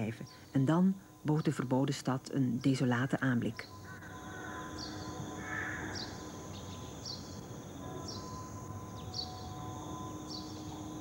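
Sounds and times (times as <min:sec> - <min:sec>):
faint sustained tones: 0:00.0 - 0:11.0
high insect-like chirp: 0:00.0 - 0:11.0.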